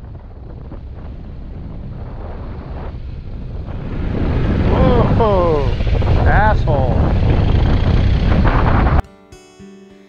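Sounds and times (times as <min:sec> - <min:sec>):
wind rumble on microphone: 0:00.0 - 0:09.0.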